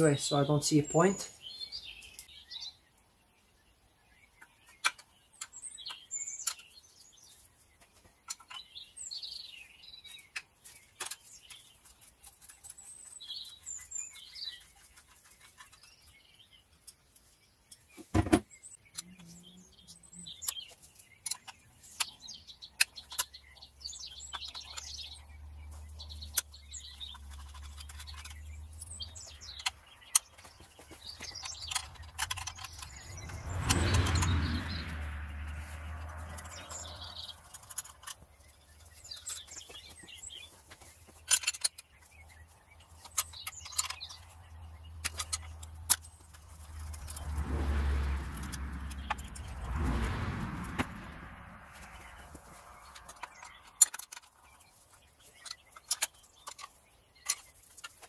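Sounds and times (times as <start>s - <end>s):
metal tools clicking and knocking: 31.4s - 33.0s, 41.2s - 41.9s, 45.0s - 47.2s, 53.0s - 54.4s
low hum: 46.7s - 53.0s.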